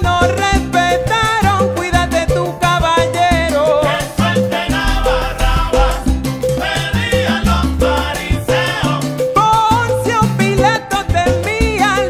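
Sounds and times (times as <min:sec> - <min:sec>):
big band playing salsa: 0:00.0 - 0:12.0
percussion: 0:00.0 - 0:12.0
upright bass notes: 0:00.0 - 0:12.0.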